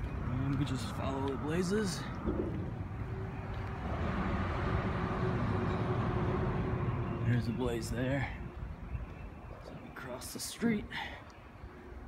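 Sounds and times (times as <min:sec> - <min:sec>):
road traffic rush: 0:00.0 - 0:12.0.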